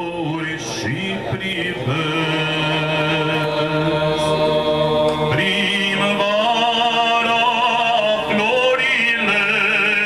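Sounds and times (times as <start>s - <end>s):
men singing together: 0.0s - 10.0s.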